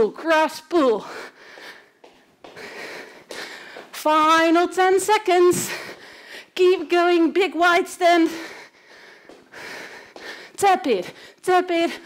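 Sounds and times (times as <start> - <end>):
woman breathing hard: 1.0 - 4.0, 5.6 - 6.6, 8.2 - 11.4.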